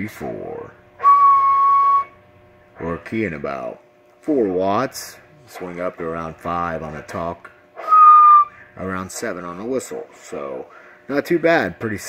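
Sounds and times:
person whistling a steady note: 0:01.0 - 0:02.2, 0:07.8 - 0:08.7.

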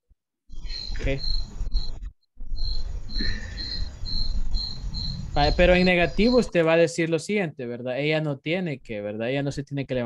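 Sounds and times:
cricket chirping: 0:00.5 - 0:06.7.

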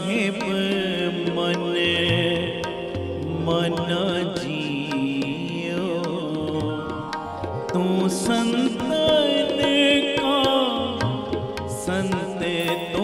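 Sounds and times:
man singing devotional song: 0:00.0 - 0:13.0.

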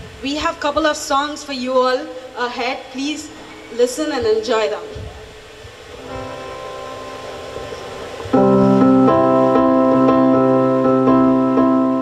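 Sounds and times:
electronic keyboard chords: 0:05.9 - 0:12.0.

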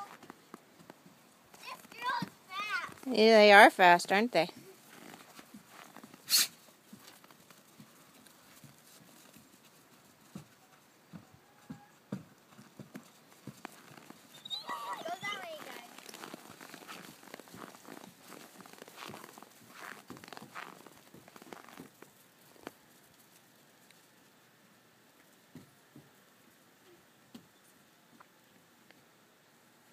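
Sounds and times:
paws pattering on packed snow: 0:00.0 - 0:03.1, 0:04.6 - 0:24.1.

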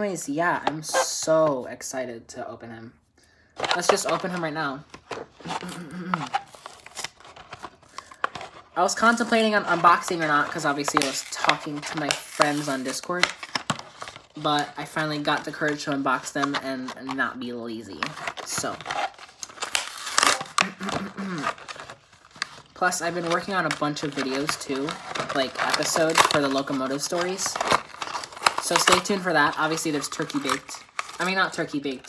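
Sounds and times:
plastic blister pack crackling: 0:03.6 - 0:32.0.

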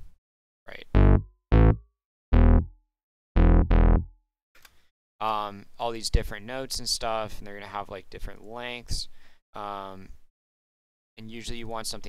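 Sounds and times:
short pitched synth notes: 0:01.0 - 0:02.7, 0:03.4 - 0:04.1.

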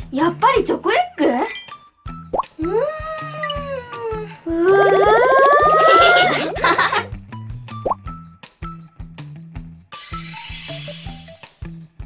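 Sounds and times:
background music with repeating beat: 0:06.5 - 0:09.9.

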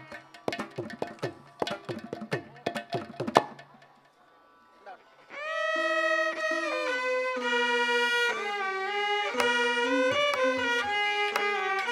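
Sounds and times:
violins playing long bowed notes: 0:04.4 - 0:11.9.

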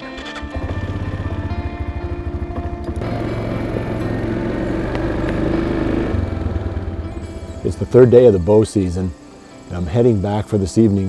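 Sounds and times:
atv engine idling: 0:00.5 - 0:07.8.

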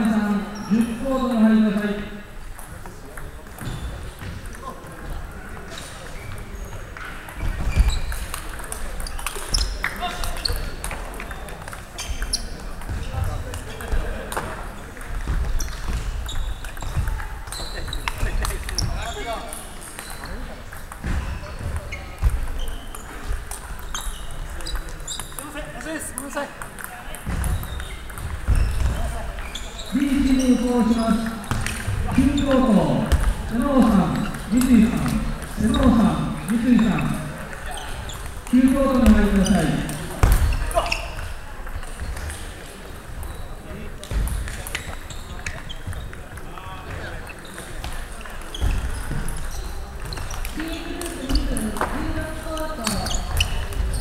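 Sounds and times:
voices in a hall: 0:00.0 - 0:54.0.

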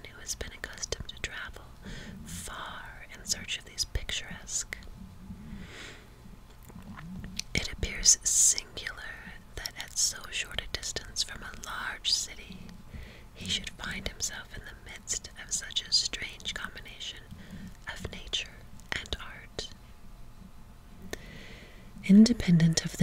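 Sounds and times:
woman whispering: 0:00.0 - 0:04.9, 0:07.4 - 0:12.7, 0:13.4 - 0:19.8, 0:22.0 - 0:23.0.

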